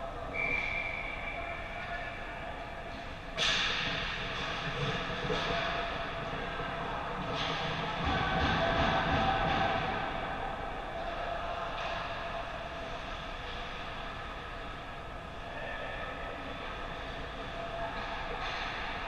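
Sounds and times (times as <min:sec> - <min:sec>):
distant hockey play: 0:00.3 - 0:19.0.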